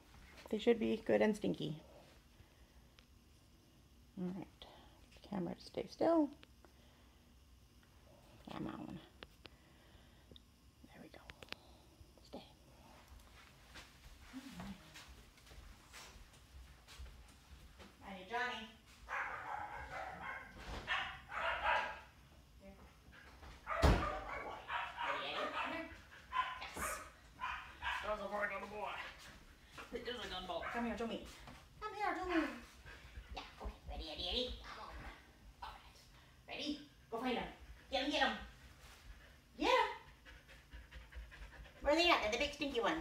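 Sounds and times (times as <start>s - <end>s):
dog panting quickly: 32.3s - 33.8s, 37.2s - 43.0s.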